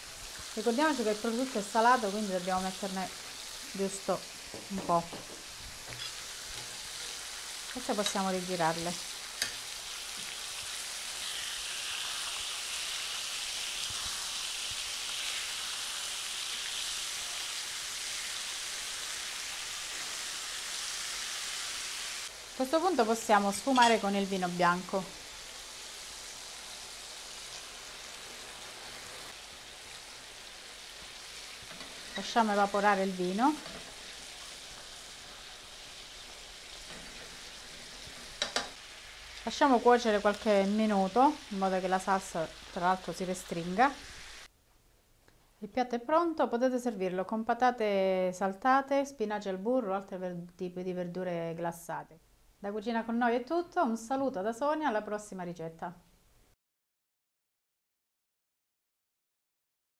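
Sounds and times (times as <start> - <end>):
meat sizzling in butter: 0.0 - 44.5
tongs turning meat: 31.0 - 39.4.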